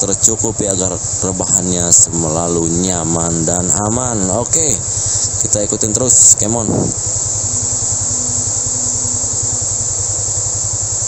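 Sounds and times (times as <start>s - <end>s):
faint steady hum: 0.0s - 11.0s
vehicle engine running: 0.0s - 11.0s.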